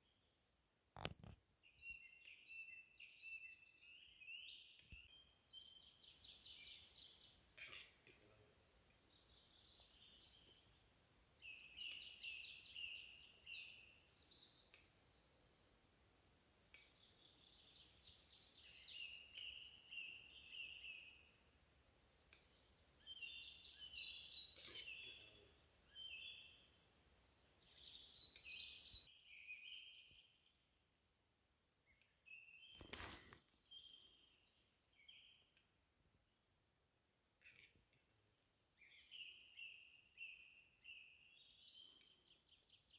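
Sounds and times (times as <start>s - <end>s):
faint trilled bird song: 0.0s - 35.9s, 37.3s - 42.9s.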